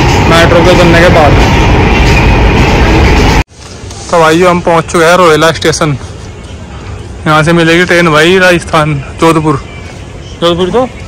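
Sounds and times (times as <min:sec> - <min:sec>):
train rumble inside carriage: 0:00.0 - 0:04.1
open-air background: 0:00.0 - 0:11.0.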